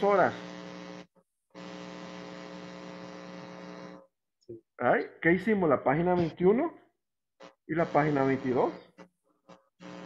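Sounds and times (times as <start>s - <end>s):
buzzy electrical mains hum: 0.0s - 4.2s, 7.4s - 10.0s.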